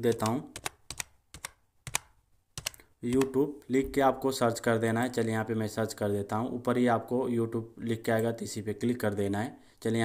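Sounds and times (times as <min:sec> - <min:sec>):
keyboard keystroke clicks: 0:00.1 - 0:03.4.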